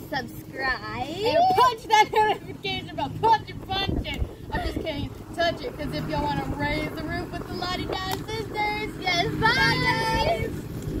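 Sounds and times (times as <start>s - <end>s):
girls singing: 6.6s - 10.6s.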